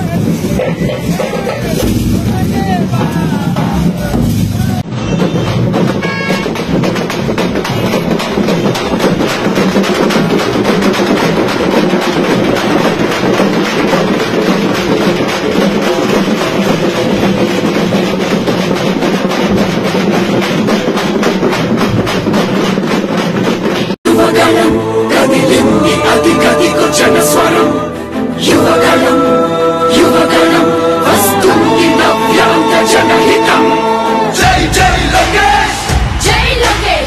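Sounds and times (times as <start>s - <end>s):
drum troupe playing fast rhythm: 0.0s - 37.0s.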